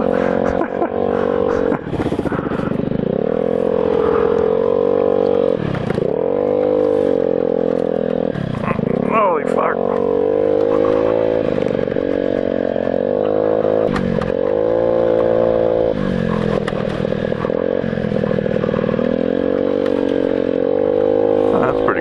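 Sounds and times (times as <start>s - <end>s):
small motorcycle engine: 0.0s - 22.0s.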